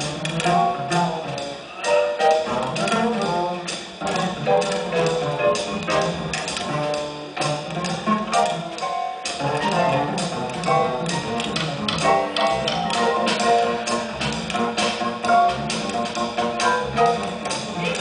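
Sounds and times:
drum and cymbal beat: 0.0 - 18.0
jazz big band playing: 0.0 - 18.0.

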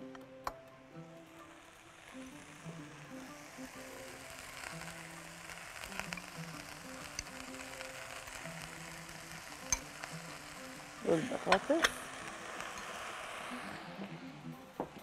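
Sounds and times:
vegetables sizzling in a frying pan: 0.0 - 15.0.

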